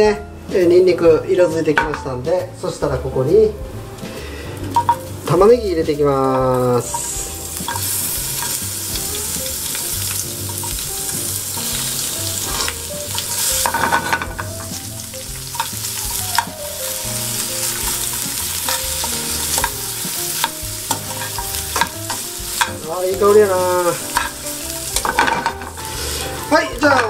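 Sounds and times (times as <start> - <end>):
onion sizzling in frying pan: 0.4 - 27.0
tongs clicking against pan: 6.3 - 9.0, 9.7 - 11.7, 15.4 - 16.5, 17.7 - 22.8, 24.0 - 25.6.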